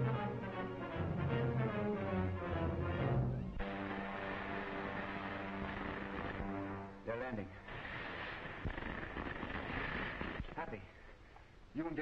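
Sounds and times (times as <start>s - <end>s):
orchestral music: 0.0s - 7.3s.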